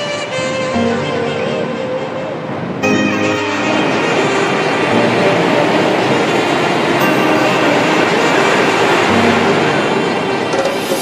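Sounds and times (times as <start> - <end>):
waves breaking on beach: 0.0 - 11.0.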